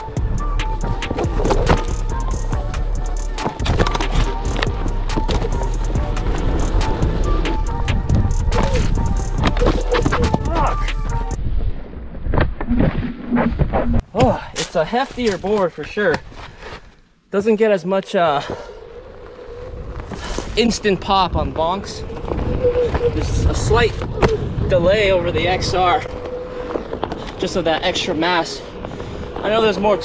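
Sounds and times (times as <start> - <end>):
background music: 0.0 - 11.4
board wheel rumbling on dirt: 0.0 - 16.8, 18.2 - 30.0.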